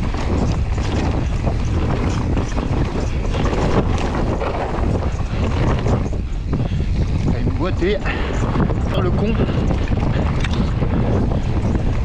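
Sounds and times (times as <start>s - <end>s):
tyres rolling on gravel: 0.0s - 6.3s
bike rattling: 0.0s - 12.0s
wind buffeting microphone: 0.0s - 12.0s.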